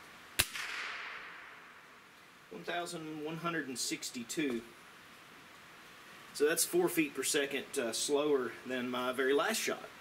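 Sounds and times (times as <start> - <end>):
air rifle shot: 0.4 - 1.8.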